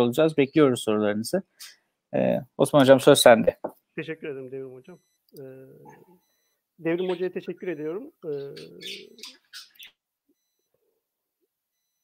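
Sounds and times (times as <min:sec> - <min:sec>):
man talking over online call: 0:00.0 - 0:06.1, 0:06.8 - 0:09.3.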